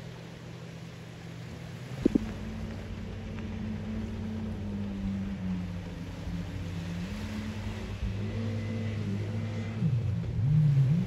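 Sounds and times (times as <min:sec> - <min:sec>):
jet ski engines humming: 0:00.0 - 0:11.0.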